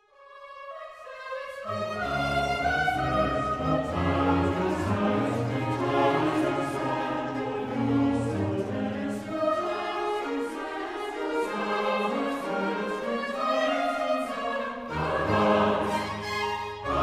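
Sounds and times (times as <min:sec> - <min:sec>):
string orchestra: 0:00.3 - 0:17.0
choir singing: 0:00.8 - 0:17.0.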